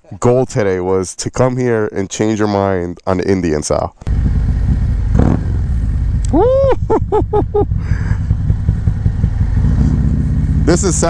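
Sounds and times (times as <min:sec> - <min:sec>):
motorcycle engine running: 0:04.1 - 0:11.0
person laughing: 0:06.2 - 0:08.4.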